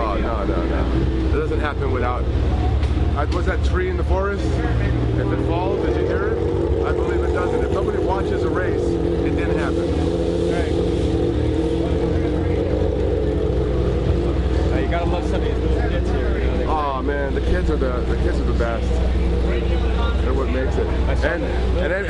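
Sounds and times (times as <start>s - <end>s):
people's voices: 0.0s - 22.0s
steady engine drone: 0.0s - 22.0s.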